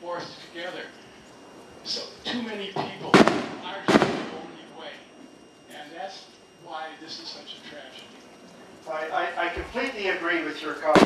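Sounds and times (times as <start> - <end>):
sharp loud bangs: 3.1 - 4.5.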